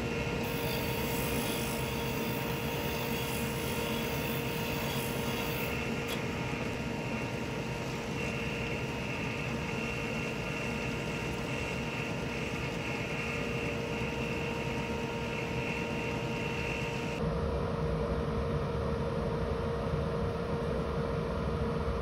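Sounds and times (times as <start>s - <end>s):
disc sander motor whine: 0.0s - 17.2s.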